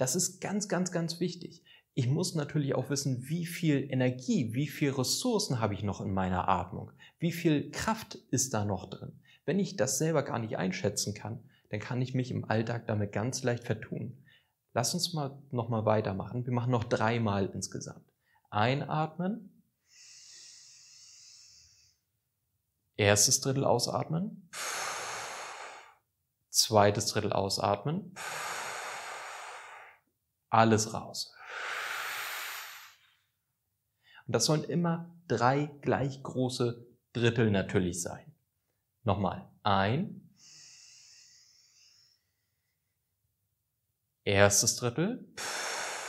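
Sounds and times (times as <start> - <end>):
man drawing deep breath: 19.8 - 22.0, 24.5 - 26.0, 28.2 - 30.1, 31.4 - 33.2, 40.4 - 42.8, 45.4 - 46.0.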